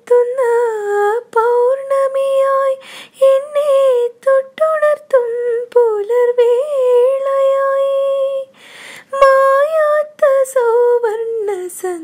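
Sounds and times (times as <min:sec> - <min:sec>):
woman singing unaccompanied: 0:00.0 - 0:12.0
singer breathing: 0:02.8 - 0:03.2, 0:08.5 - 0:09.1.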